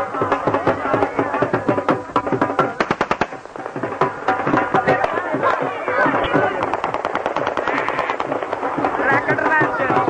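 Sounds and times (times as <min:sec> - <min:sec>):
festive music with drums: 0:00.0 - 0:10.0
rapid sharp bangs: 0:01.7 - 0:10.0.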